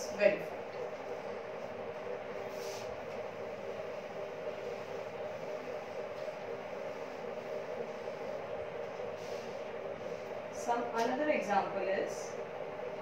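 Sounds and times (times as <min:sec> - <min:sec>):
machine humming: 0:00.0 - 0:13.0.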